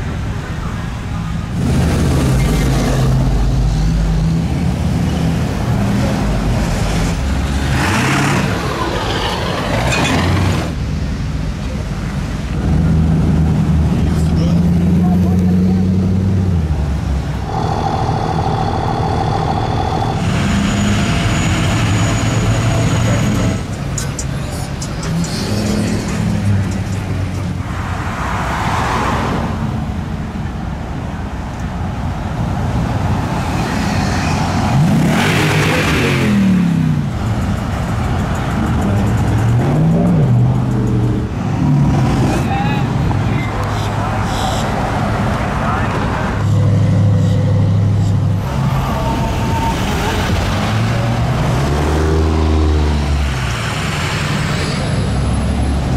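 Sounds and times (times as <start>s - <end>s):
engine revving: 6.0s - 10.8s, 17.4s - 23.7s, 34.4s - 37.3s, 46.3s - 55.9s.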